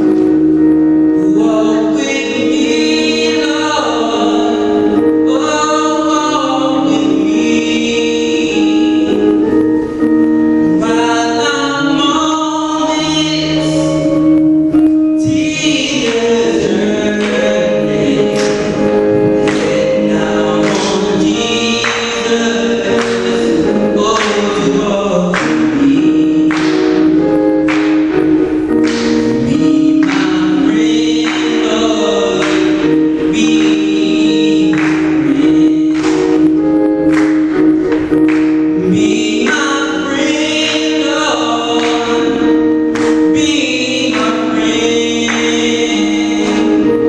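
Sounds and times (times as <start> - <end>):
held chords: 0.0 - 47.0
man singing gospel into microphone: 0.0 - 47.0.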